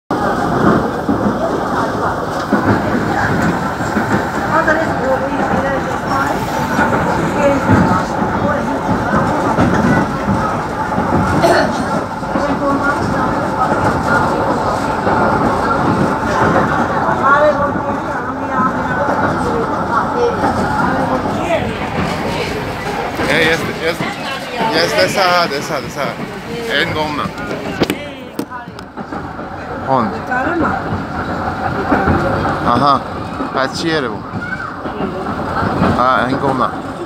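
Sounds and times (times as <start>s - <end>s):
indistinct voices talking: 0.1s - 37.0s
train rumble inside carriage: 0.1s - 37.0s.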